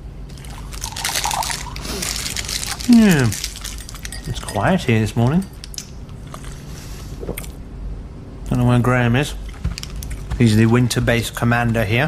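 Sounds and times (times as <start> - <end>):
liquid pouring into cup: 0.3 - 4.3.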